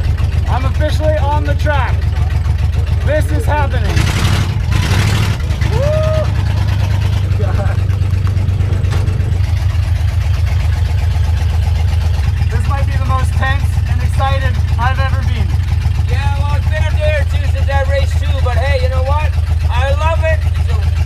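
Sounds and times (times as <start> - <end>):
truck engine droning: 0.0 - 21.0.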